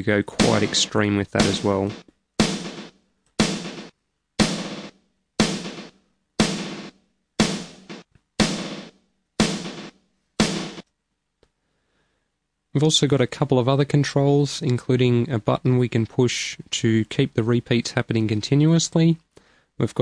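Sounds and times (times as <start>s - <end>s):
snare drum stutter hits: 0.4s - 10.9s.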